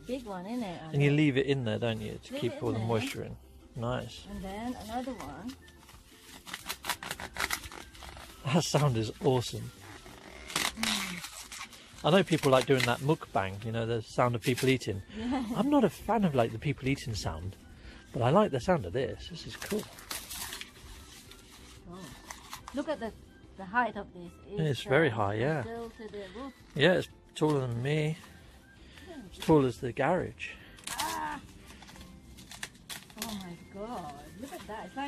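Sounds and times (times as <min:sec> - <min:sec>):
corn husk rustling and crackling: 0:00.0 - 0:17.5, 0:18.1 - 0:22.9, 0:30.6 - 0:35.0.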